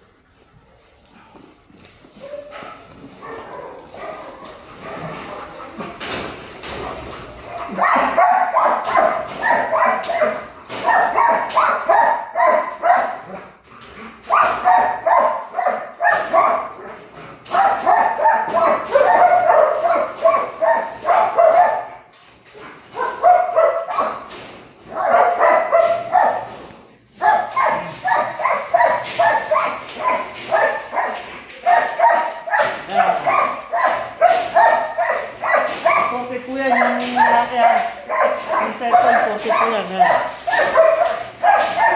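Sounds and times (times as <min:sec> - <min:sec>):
dog barking and yipping: 0:02.2 - 0:05.6, 0:06.8 - 0:13.4, 0:14.2 - 0:41.9.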